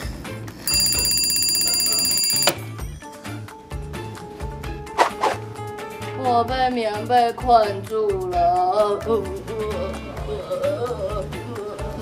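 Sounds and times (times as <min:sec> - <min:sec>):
alarm clock ringing: 0:00.7 - 0:02.6
background music with steady beat: 0:01.7 - 0:12.0.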